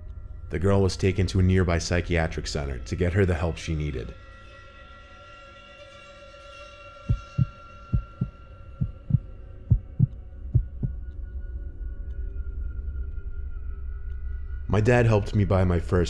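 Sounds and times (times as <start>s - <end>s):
ambient music with held tones: 0.0s - 16.0s
heartbeat thumps: 7.1s - 11.0s.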